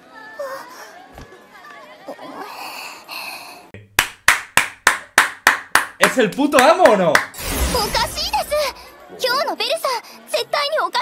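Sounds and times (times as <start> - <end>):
man clapping hands: 4.0 - 7.3.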